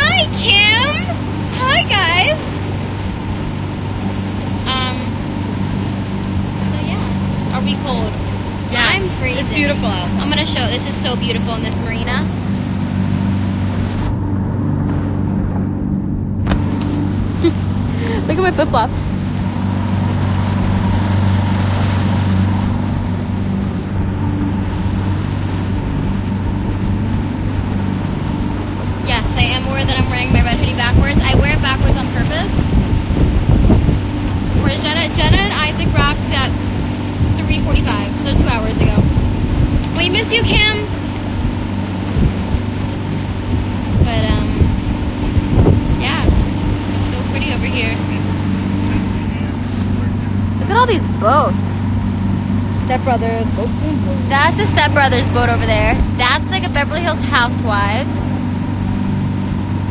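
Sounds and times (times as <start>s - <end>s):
outboard motor humming: 0.0s - 59.9s
water rushing: 0.0s - 59.9s
wind noise: 0.0s - 59.9s.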